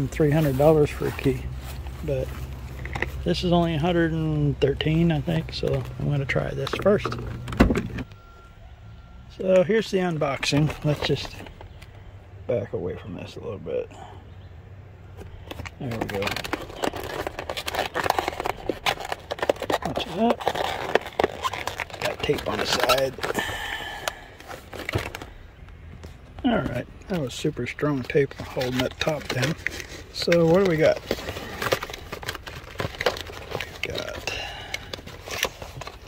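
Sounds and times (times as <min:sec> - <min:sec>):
handling noise: 0:00.0 - 0:08.2, 0:09.4 - 0:12.0, 0:15.0 - 0:36.0
faint steady tone: 0:08.0 - 0:10.4
tape peeling off cardboard: 0:16.0 - 0:23.4.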